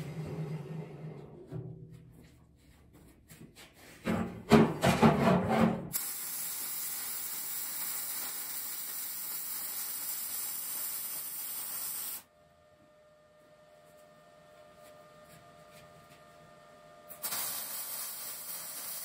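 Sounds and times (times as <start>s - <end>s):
welding arc hiss and crackle: 5.9s - 12.3s, 17.1s - 19.0s.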